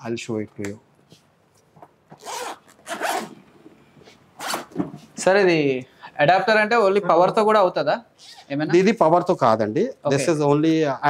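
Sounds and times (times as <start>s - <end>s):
zipper pulled open: 2.2s - 3.4s, 4.4s - 4.8s.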